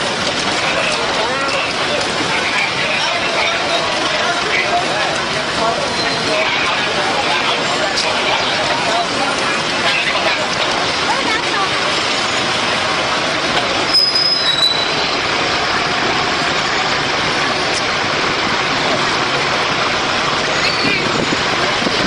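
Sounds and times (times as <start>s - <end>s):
trucks driving past: 0.0s - 22.0s
brief high squeal: 13.9s - 15.2s.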